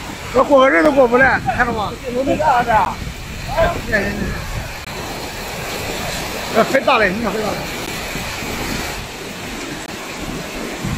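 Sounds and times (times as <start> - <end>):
floodwater rushing: 0.0 - 10.9.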